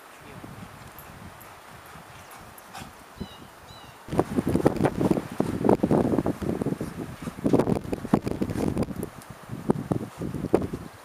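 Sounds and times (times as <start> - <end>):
gusty wind buffeting microphone: 0.0 - 11.0
faint bird chirps: 3.2 - 4.0.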